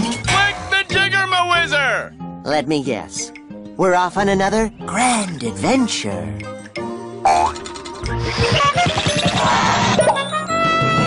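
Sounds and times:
music: 0.0s - 11.0s
springy boing: 7.2s - 7.8s.

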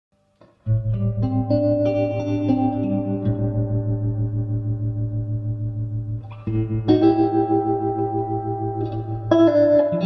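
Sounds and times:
clean electric guitar notes: 0.6s - 10.0s.

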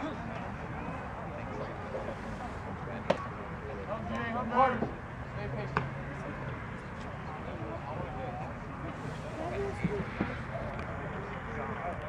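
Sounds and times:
open-air background noise: 0.0s - 12.0s.

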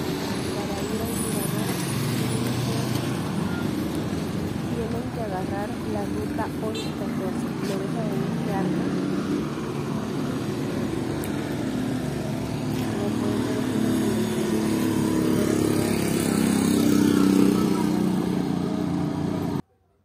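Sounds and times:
vehicle engine rumbling: 0.0s - 19.6s
street traffic: 0.0s - 19.8s.

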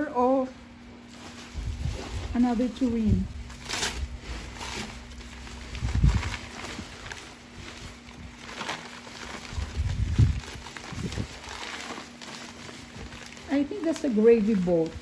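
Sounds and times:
newspaper rustling and crinkling: 1.0s - 15.0s.

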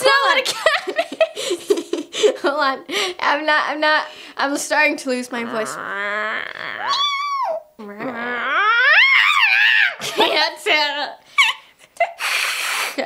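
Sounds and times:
woman imitating cat meows: 5.4s - 10.0s
breathy hiss: 12.1s - 13.0s.

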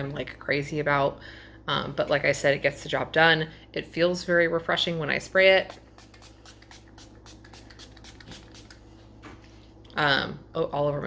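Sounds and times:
spray bottle spritzing: 5.7s - 8.9s.

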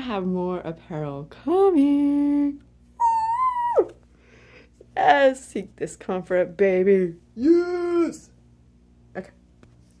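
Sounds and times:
woman whooping: 3.0s - 4.0s.

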